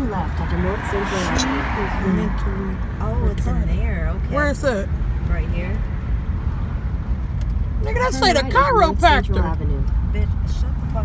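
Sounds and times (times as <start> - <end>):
car interior rumble: 0.0 - 11.0
person speaking: 0.7 - 2.4, 7.8 - 9.5.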